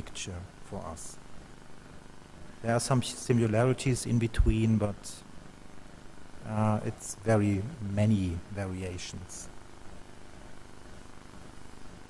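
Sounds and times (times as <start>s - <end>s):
faint hiss: 0.0s - 12.0s
steady low hum: 0.0s - 12.0s.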